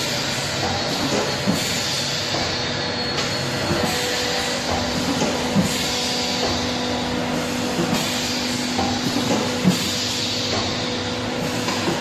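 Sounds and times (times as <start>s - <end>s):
packaging machine running: 0.0s - 12.0s.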